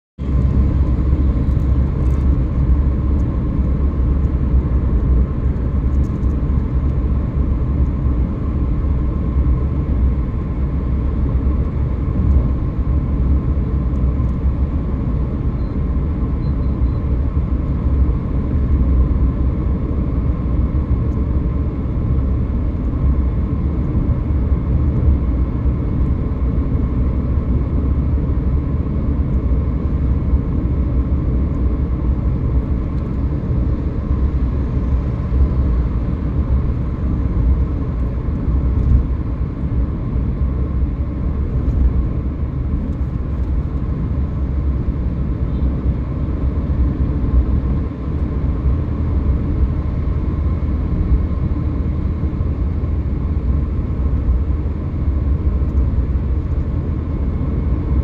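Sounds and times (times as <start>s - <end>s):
car cabin road rumble: 0.2s - 58.0s.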